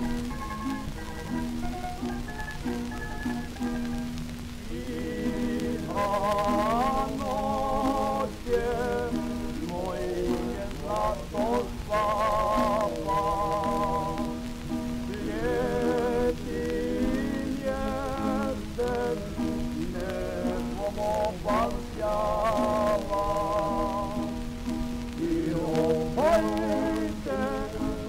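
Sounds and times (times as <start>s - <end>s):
plucked string accompaniment: 0.0s - 28.0s
record crackle and hiss: 0.0s - 28.0s
choir singing with vibrato: 4.6s - 14.5s, 15.1s - 28.0s.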